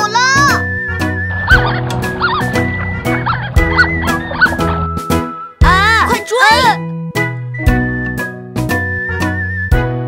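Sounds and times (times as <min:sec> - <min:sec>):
light children's music: 0:00.0 - 0:10.0.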